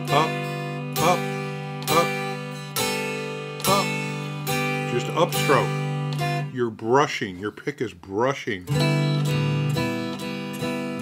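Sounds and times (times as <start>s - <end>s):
electric guitar strums: 0.0s - 6.9s, 8.6s - 11.0s.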